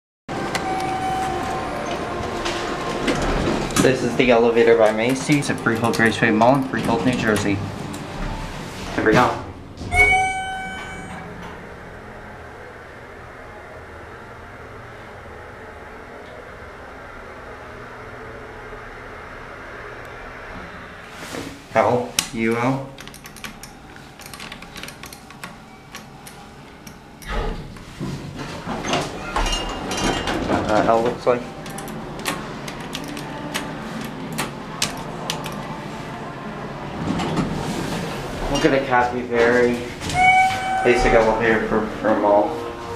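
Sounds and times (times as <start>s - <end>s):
elevator chime: 0.3s - 3.6s, 9.9s - 12.7s, 25.6s - 26.4s, 40.1s - 42.3s
elevator ride hum: 0.3s - 42.9s.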